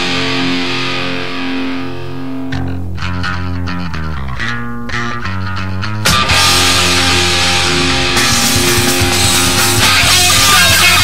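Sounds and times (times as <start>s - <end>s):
distorted electric guitar chord: 0.0s - 11.0s
picked guitar riff: 0.0s - 11.0s.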